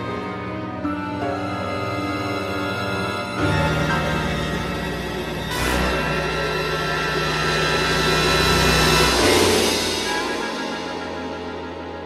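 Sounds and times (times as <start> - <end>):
dense film score music: 0.0 - 12.0.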